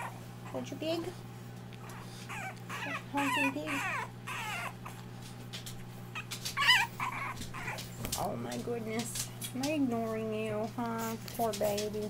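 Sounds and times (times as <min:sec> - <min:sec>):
puppy whimpering: 0:00.0 - 0:01.1, 0:01.8 - 0:05.1, 0:05.8 - 0:08.3.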